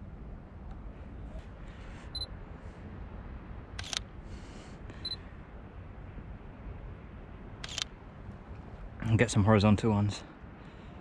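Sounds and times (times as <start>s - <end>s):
low background noise: 0.0s - 11.0s
camera shutter click: 3.8s - 4.1s, 7.6s - 7.9s.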